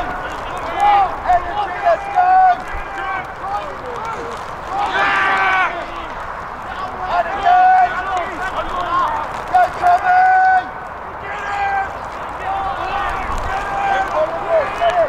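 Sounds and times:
people shouting: 0.0 - 15.0.

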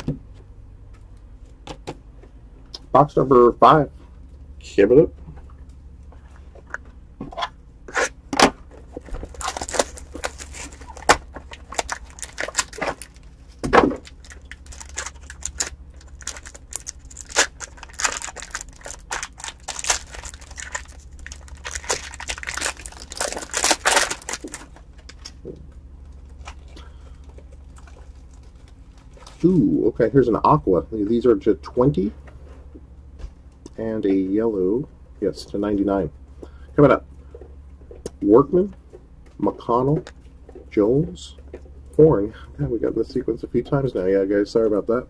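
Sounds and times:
low steady hum: 0.0 - 45.0
foil wrapping crinkling: 8.9 - 25.4, 26.1 - 29.6.

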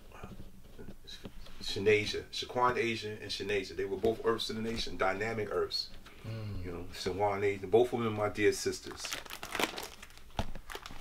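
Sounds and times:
plastic sleeves crinkling: 8.5 - 11.0.

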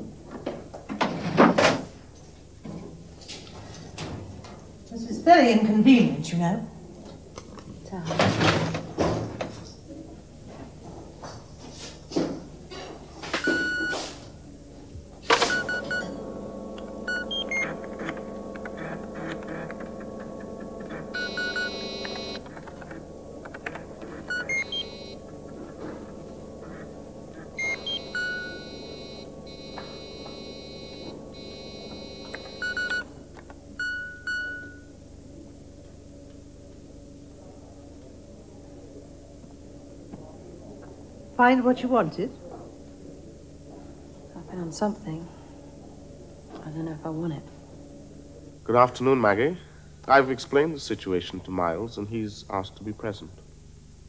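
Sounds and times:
sustained synthesizer chord: 14.4 - 33.8
computer terminal beeps: 15.4 - 16.1, 17.0 - 19.8, 20.8 - 22.5, 24.1 - 25.2, 26.7 - 33.1.

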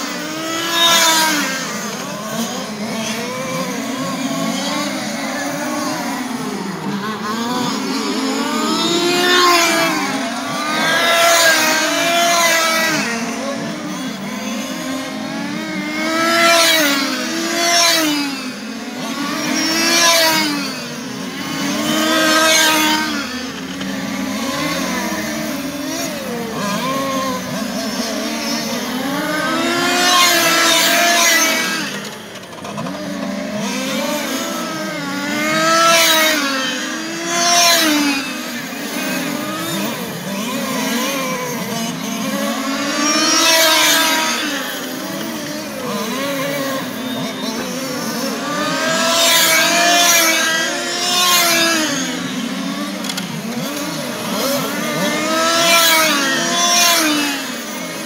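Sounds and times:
rc car engines revving: 0.0 - 58.0.

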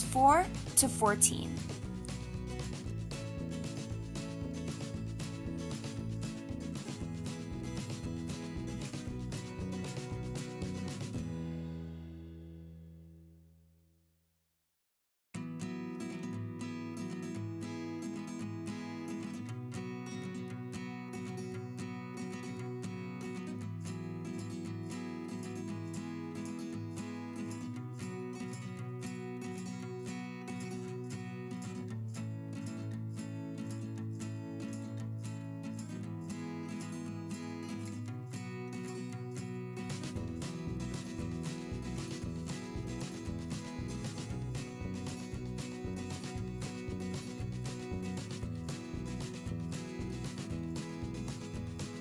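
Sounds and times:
acoustic guitar strumming chords: 0.0 - 12.4, 15.4 - 52.0
bass part: 40.2 - 52.0.

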